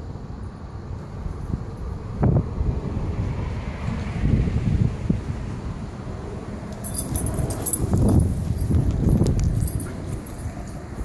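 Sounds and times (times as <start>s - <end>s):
dogs playing and scuffling: 6.7s - 11.0s.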